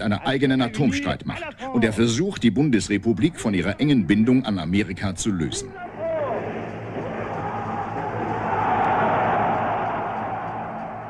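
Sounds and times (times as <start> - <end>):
low film sound hum: 0.0 - 11.0
crowd cheering and applauding: 5.9 - 11.0.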